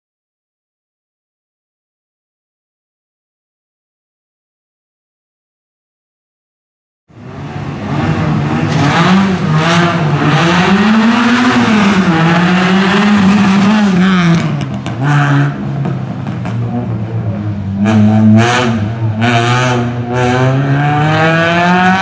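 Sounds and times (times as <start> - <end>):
race car engine revving hard: 7.2 - 22.0.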